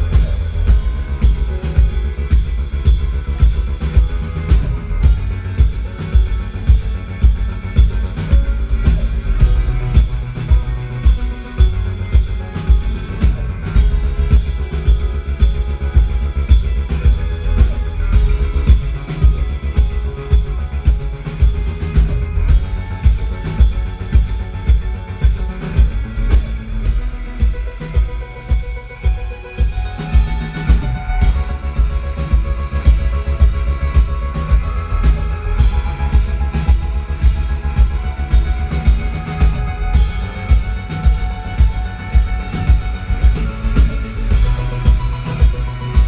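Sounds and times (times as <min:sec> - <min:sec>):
electro-pop band playing: 0:00.0 - 0:46.0
heavy kick drum beat: 0:00.0 - 0:46.0.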